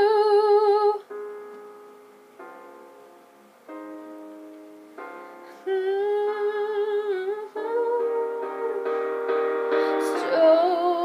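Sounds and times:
woman singing wordless vocal: 0.0 - 1.1, 5.5 - 11.0
sustained piano chords: 0.0 - 11.0.

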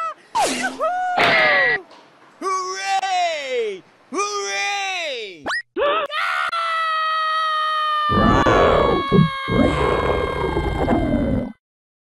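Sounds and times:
high-pitched cartoon voice screaming: 5.8 - 11.0.

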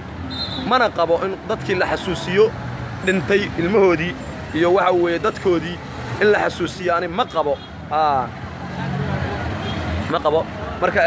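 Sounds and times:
man talking: 0.6 - 8.4, 10.0 - 11.0.

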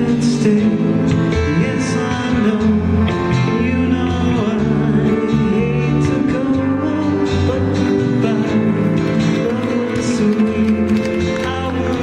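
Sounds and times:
live country band playing: 0.0 - 12.0.

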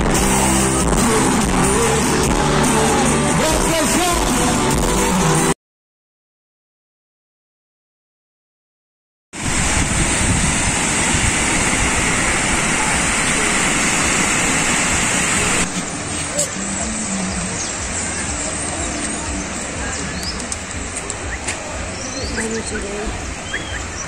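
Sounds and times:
surf rushing: 0.0 - 5.6, 9.4 - 24.0
wind on microphone: 9.4 - 24.0
faint indistinct voices: 12.2 - 24.0.

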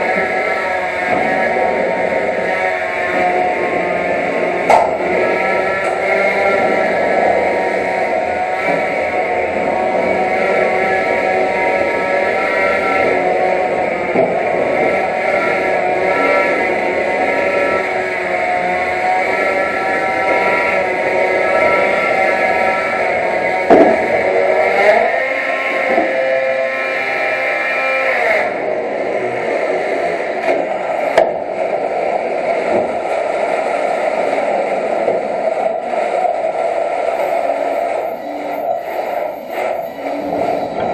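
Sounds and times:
robot motors whining: 0.0 - 40.9.

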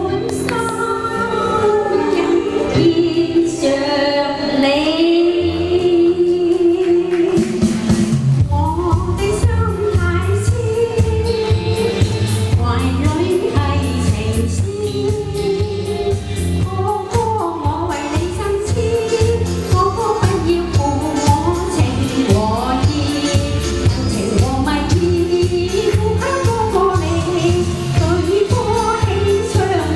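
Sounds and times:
backing music with beat: 0.0 - 29.9
woman singing pop song: 0.0 - 29.9.

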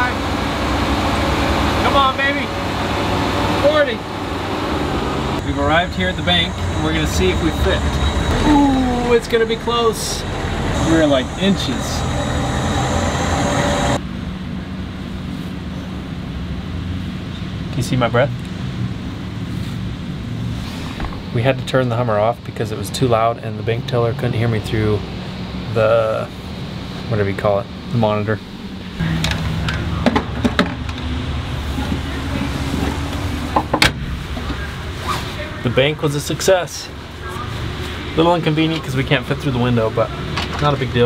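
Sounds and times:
broad rushing noise: 0.0 - 14.2
diesel engine humming: 0.0 - 17.7, 18.9 - 41.0.

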